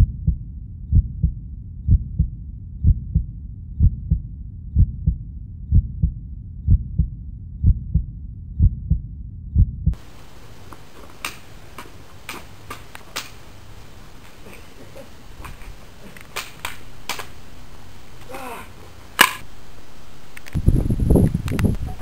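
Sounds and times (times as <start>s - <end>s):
heartbeat thumps: 0.0s - 10.0s
sticks clacking together: 10.7s - 13.4s, 14.2s - 17.4s, 19.2s - 19.4s.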